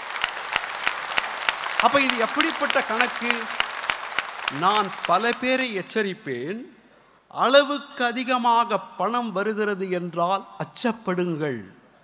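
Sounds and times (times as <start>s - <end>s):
audience applause: 0.0s - 5.8s
man speaking over a microphone: 1.8s - 3.6s, 4.5s - 11.8s.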